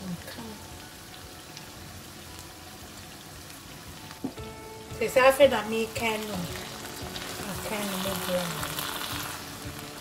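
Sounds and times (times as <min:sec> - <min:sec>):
stew sizzling in a frying pan: 0:00.0 - 0:10.0.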